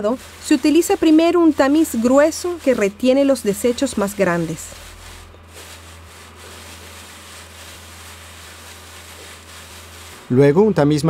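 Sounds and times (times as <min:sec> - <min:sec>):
hands rubbing seeds on wire sieve: 0:00.0 - 0:10.4
low steady hum: 0:00.0 - 0:11.0.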